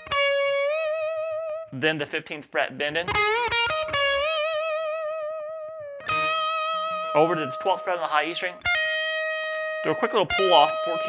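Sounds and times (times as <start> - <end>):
electric guitar bent note vibrato: 5.9 - 11.0.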